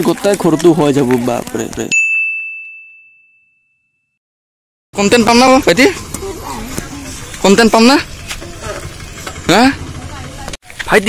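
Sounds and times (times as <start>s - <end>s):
voice: 0.0s - 2.0s, 5.0s - 8.8s, 9.4s - 11.0s
high bell-like ding: 1.9s - 4.2s.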